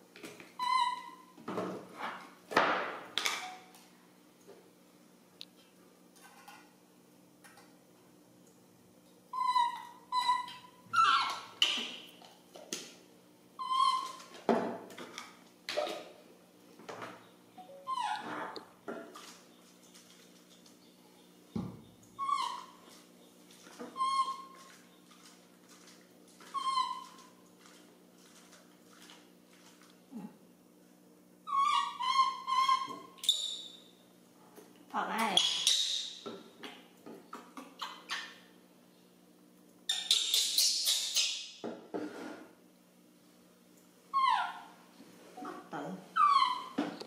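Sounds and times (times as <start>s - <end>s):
baby monkey crying: 0.6s - 1.3s, 9.3s - 11.5s, 13.6s - 14.2s, 17.6s - 18.3s, 22.2s - 22.8s, 23.9s - 24.5s, 26.5s - 27.3s, 31.5s - 33.2s, 44.1s - 44.7s, 46.2s - 46.8s.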